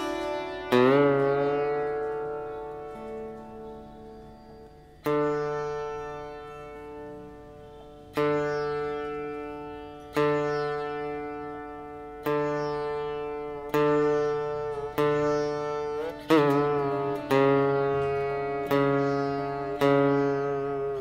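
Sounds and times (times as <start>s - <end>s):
slide string instrument plucked notes: 0.0s - 21.0s.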